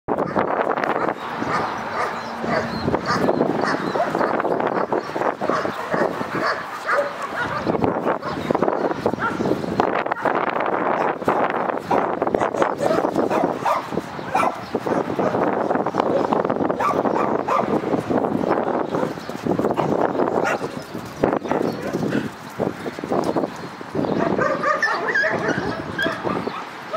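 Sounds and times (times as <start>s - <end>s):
dogs growling and yipping: 0.2s - 17.9s, 18.8s - 22.5s, 24.0s - 26.9s
dogs scuffling: 10.7s - 15.4s, 16.8s - 26.4s.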